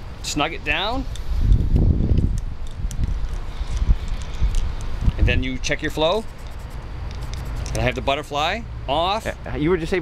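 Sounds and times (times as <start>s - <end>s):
wind buffeting microphone: 1.1s - 6.6s.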